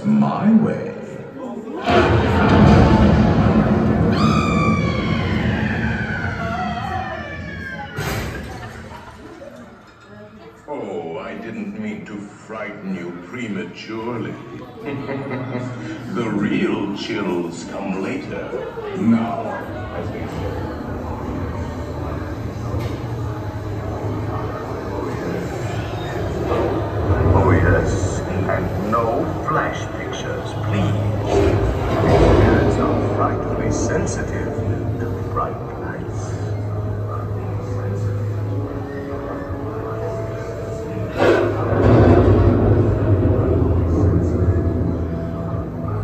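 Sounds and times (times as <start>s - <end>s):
eerie sustained tones: 1.6s - 12.3s, 15.6s - 46.0s
sudden loud crash: 1.8s - 9.0s, 31.0s - 34.8s, 41.2s - 45.3s.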